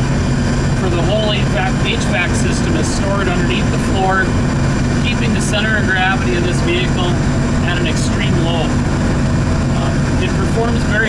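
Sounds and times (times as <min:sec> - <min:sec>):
engine idling low drone: 0:00.0 - 0:11.0.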